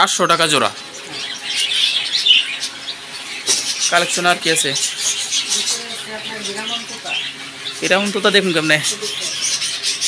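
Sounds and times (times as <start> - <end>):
caged birds chirping: 0.0 - 10.0.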